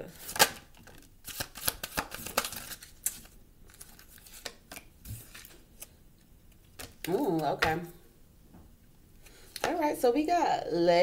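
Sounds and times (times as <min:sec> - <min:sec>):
cards tapping and sliding: 0:00.3 - 0:05.9.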